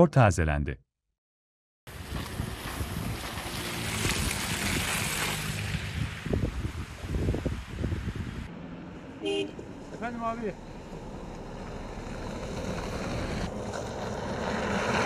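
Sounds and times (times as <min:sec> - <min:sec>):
wind on microphone: 0:01.9 - 0:08.5
passing traffic: 0:01.9 - 0:15.0.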